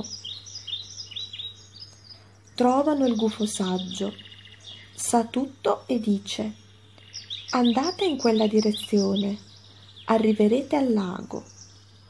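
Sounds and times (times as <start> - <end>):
faint low hum: 0.0 - 12.0
small birds chirping: 0.0 - 12.0.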